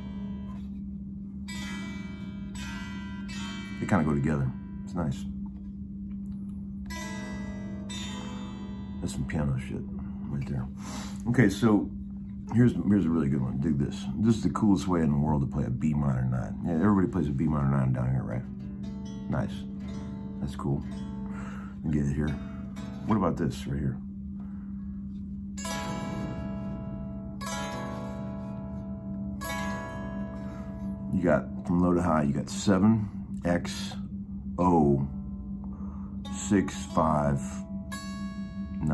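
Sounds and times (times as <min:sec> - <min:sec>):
electric guitar chord ringing: 0:00.0 - 0:38.9
steady low hum: 0:00.0 - 0:38.9.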